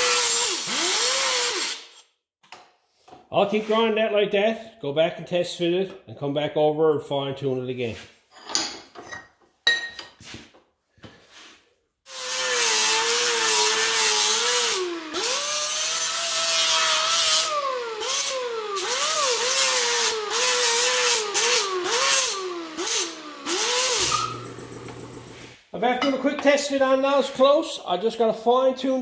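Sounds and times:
angle grinder grinding metal: 0.0 - 2.0, 12.1 - 25.6.

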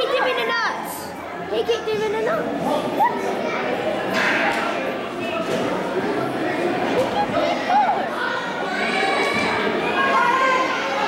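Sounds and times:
children's voices: 0.0 - 4.3, 6.4 - 11.0
indistinct chatter of spectators: 0.0 - 11.0.

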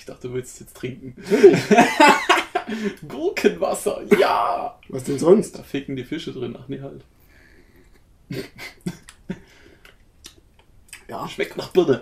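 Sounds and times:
person laughing: 1.2 - 3.0, 8.3 - 9.5.

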